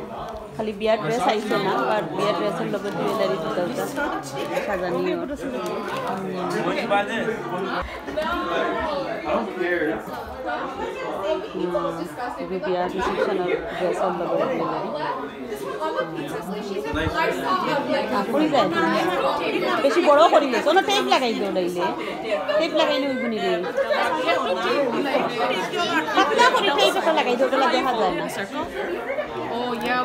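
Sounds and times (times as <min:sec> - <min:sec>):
people chatting: 0:00.0 - 0:30.0
people talking over one another: 0:00.0 - 0:30.0.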